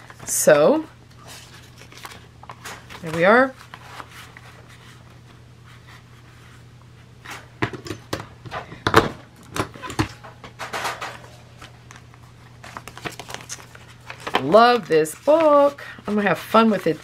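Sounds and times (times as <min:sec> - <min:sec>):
paper being handled: 0:12.6 - 0:17.0.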